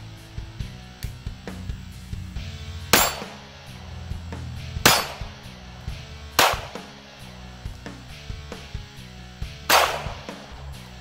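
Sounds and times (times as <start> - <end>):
background music: 0.0 - 11.0
revolver shots with ringing: 2.9 - 3.5, 4.8 - 5.5, 6.4 - 6.9, 9.7 - 10.5.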